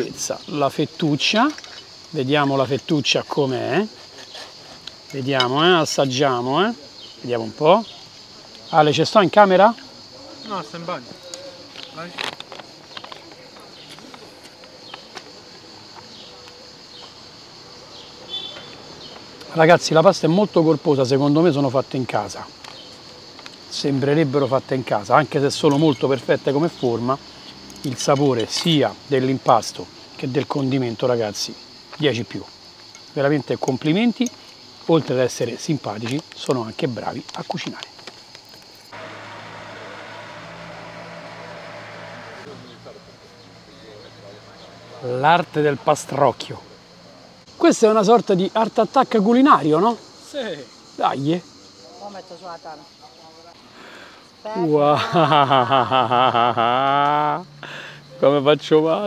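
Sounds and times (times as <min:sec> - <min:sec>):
noisy hiss: 0:38.8 - 0:51.8.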